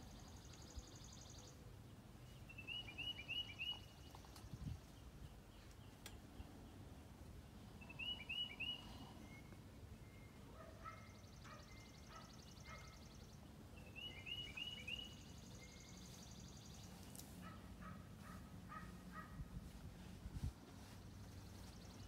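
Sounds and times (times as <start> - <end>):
birds chirping: 0.0 - 19.8, 20.6 - 22.0.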